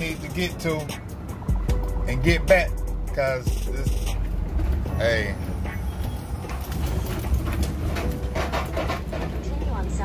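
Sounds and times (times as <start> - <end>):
road noise: 0.0 - 10.0
van engine rumble: 0.0 - 10.0.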